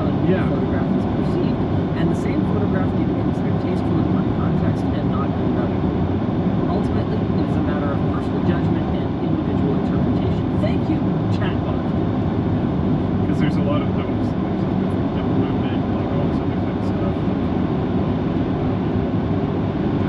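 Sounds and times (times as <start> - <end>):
tyres and engine rumble in car: 0.0 - 20.0.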